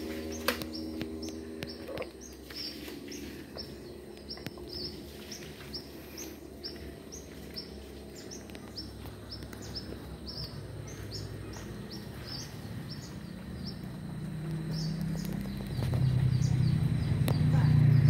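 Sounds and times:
bird chirping: 0:00.0 - 0:18.0
low outdoor rumble: 0:00.0 - 0:18.0.

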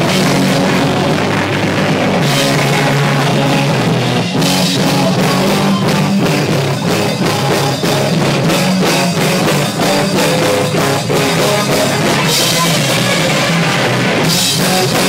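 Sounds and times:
punk band playing live: 0:00.0 - 0:15.0.

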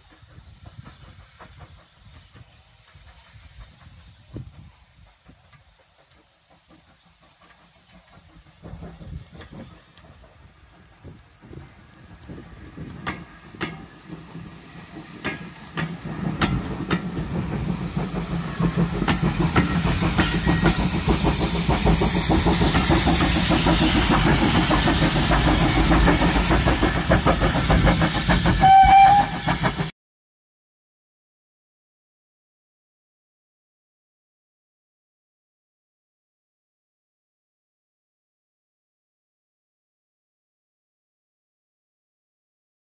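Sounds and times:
train wheels clicking over rail joints: 0:00.0 - 0:29.9.

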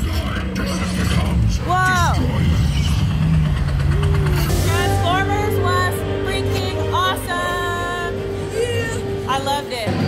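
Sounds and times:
heavy low rumble: 0:00.0 - 0:10.0.

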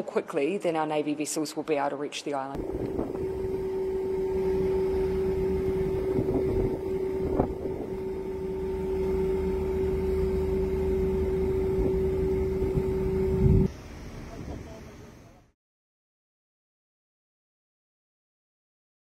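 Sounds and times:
low rumbling noise: 0:02.6 - 0:15.1
boat engine droning: 0:02.6 - 0:15.5.

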